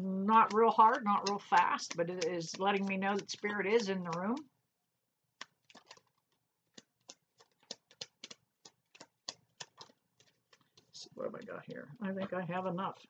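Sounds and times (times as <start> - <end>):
cards being shuffled: 0.3 - 4.4, 5.4 - 12.4.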